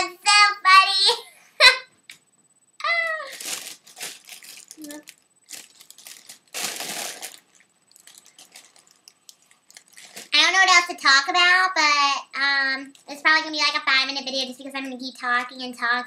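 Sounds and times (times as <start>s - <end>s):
foil balloon crinkling: 3.2s - 10.6s.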